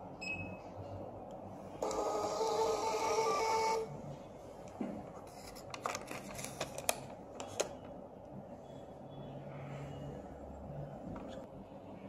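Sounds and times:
short keypad beep: 0:00.2 - 0:00.6
thermal printer printing: 0:01.8 - 0:04.0.

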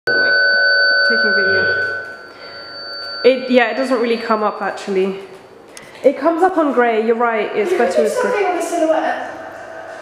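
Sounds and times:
steady electronic tone: 0:00.1 - 0:05.1.

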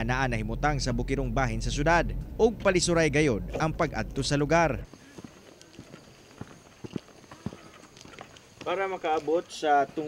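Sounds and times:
footsteps on dirt path: 0:04.8 - 0:10.0.

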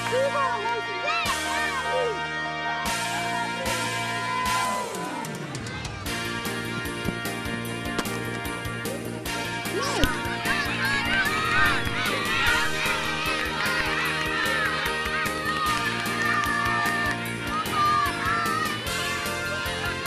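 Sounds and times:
children cheering and shouting: 0:00.0 - 0:06.3, 0:09.7 - 0:20.0
background music: 0:00.0 - 0:20.0
hand clapping: 0:15.5 - 0:17.3.

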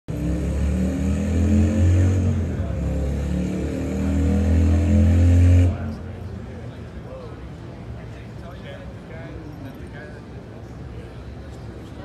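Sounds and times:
motorcycle engine rumbling and revving: 0:00.1 - 0:06.5.

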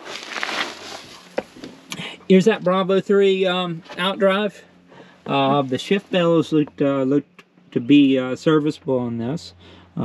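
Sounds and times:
footsteps rustling dry leaves: 0:00.0 - 0:01.9.

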